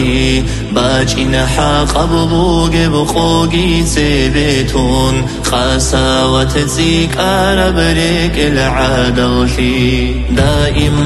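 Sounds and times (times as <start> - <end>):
solo voice singing chant-like song: 0.0 - 11.0
steady low drone: 0.0 - 11.0.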